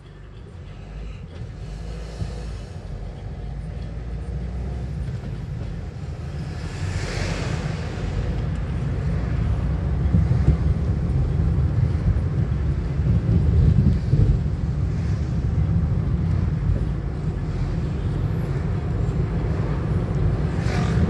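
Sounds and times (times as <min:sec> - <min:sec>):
car engine rumble: 0:00.0 - 0:21.0.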